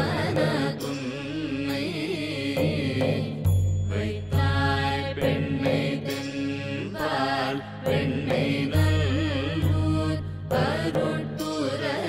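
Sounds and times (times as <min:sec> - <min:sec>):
chanting sung melody: 0:00.0 - 0:12.0.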